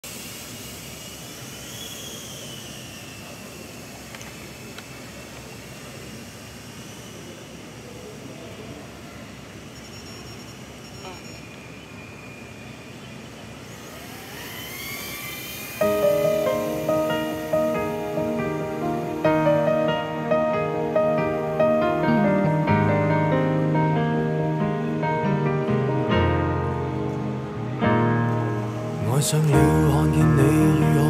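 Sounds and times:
drone motors whining: 0.6 - 8.1, 12.3 - 22.7.

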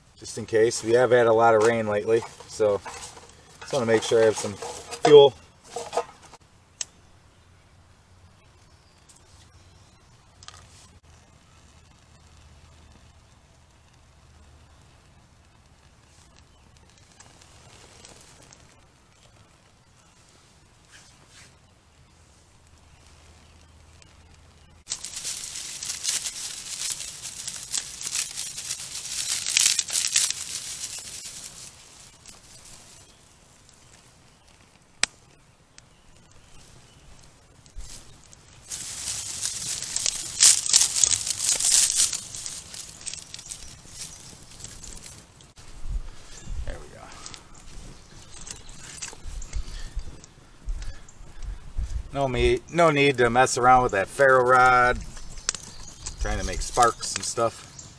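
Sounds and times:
kindling crackling and rustling: 0.0 - 7.0, 8.4 - 57.9.

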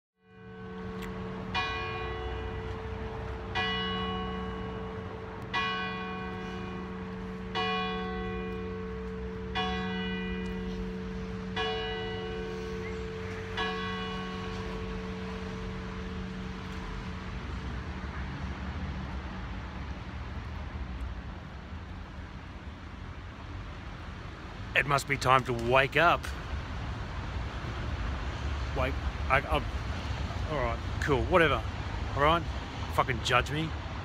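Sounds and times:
church bell tolling: 0.2 - 17.6
low rumble of street traffic: 0.2 - 34.0.

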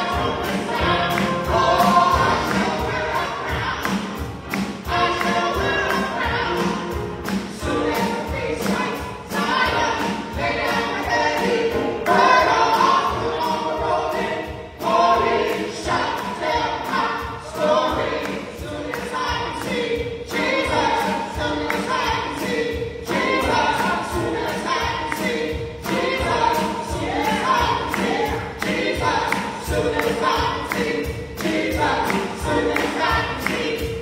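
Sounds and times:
drums steady beat: 0.0 - 34.0
gospel vocal group singing: 0.0 - 34.0
live band: 0.0 - 34.0.

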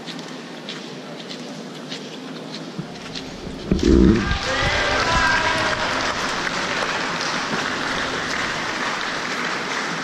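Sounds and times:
water washing in pool: 3.2 - 9.3.

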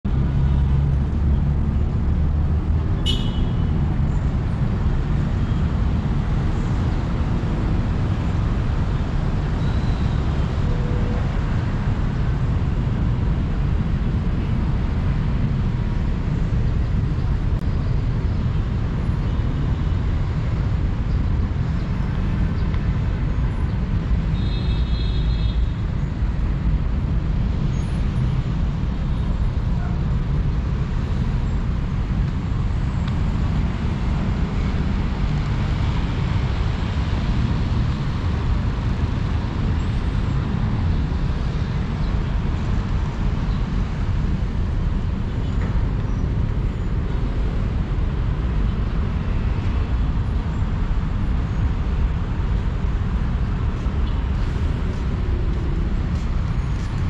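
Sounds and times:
road traffic passing: 0.0 - 57.0.

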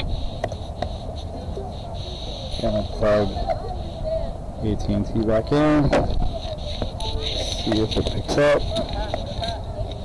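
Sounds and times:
faint steady high tone: 6.4 - 9.6.

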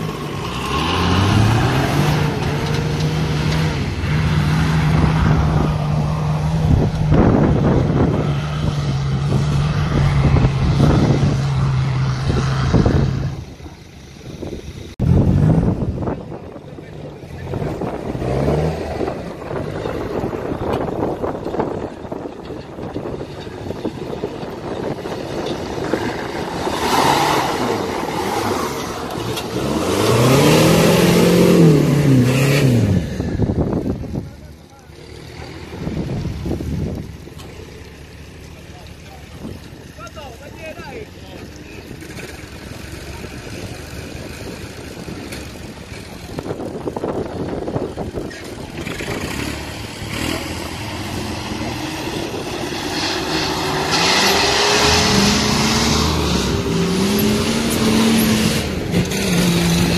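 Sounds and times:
engine revving: 0.0 - 13.8, 14.9 - 37.7, 38.6 - 59.9
engines working in mud: 0.0 - 59.9
off-road engine under load: 0.0 - 59.9.

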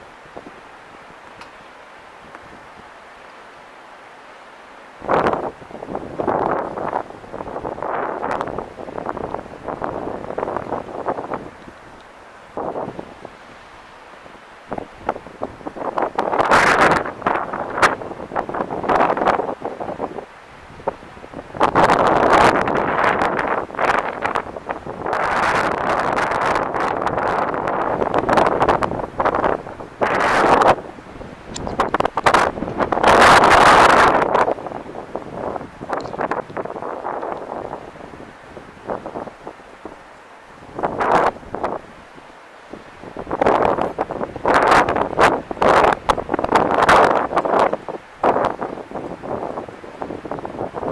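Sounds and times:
wind buffeting microphone: 5.0 - 50.9.

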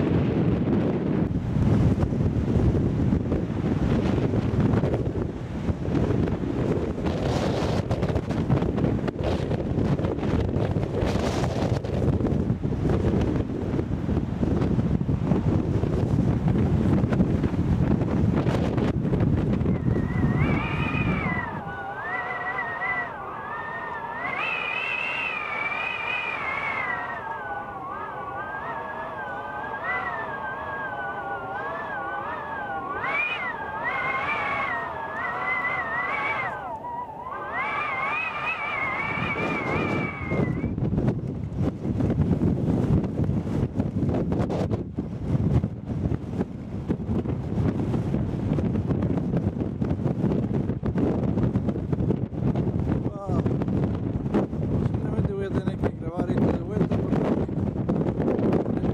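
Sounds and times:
wind buffeting microphone: 0.0 - 58.9
high wavering tone: 19.6 - 40.8.

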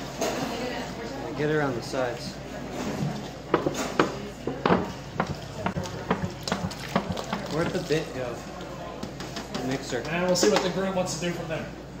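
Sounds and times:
milk glugging from jug: 5.8 - 8.1.

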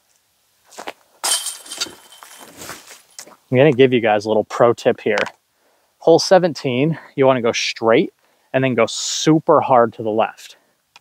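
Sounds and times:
chains jingling: 1.2 - 2.9
disc clinking into basket tray: 1.2 - 3.0
disc crashing into metal chains: 1.2 - 3.0.

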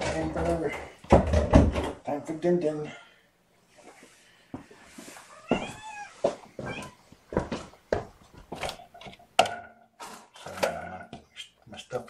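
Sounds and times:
cat meowing: 5.3 - 7.0.

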